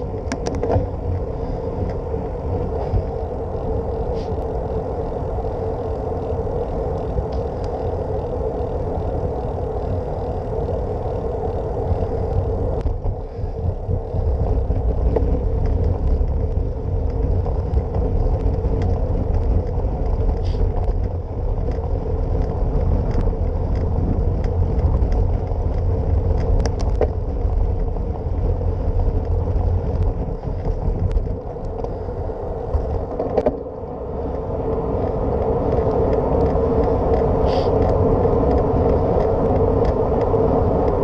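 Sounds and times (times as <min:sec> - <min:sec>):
bicycle tyres rumbling on pavement: 0:00.0 - 0:41.0
wind buffeting microphone: 0:00.0 - 0:41.0.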